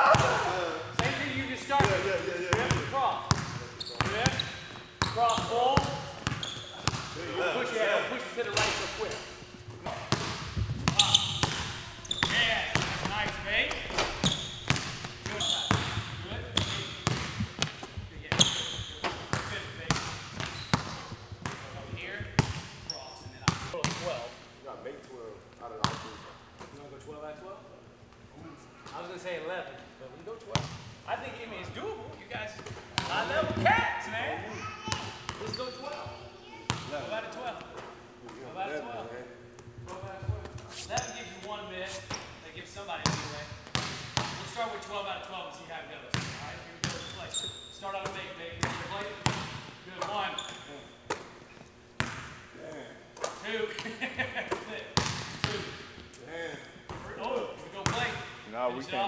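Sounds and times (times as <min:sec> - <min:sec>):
people talking: 0:00.0 - 0:06.1, 0:06.8 - 0:10.2, 0:12.1 - 0:14.3, 0:15.2 - 0:17.3
basketballs bouncing on hardwood floor: 0:01.8 - 0:07.2, 0:09.9 - 0:24.1, 0:43.0 - 0:44.5, 0:46.1 - 0:47.0, 0:48.0 - 0:49.7.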